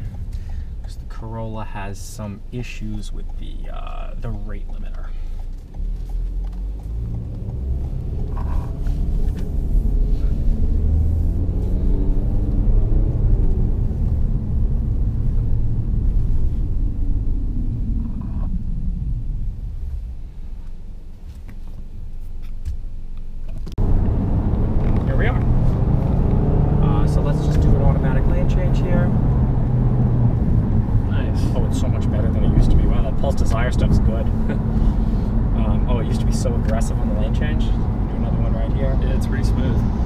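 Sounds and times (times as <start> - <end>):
car engine and road noise: 0.0 - 40.0
highway road rumble: 0.0 - 40.0.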